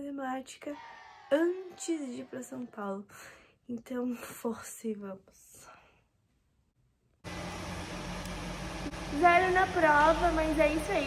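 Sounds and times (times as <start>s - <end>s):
low hum: 7.3s - 11.0s.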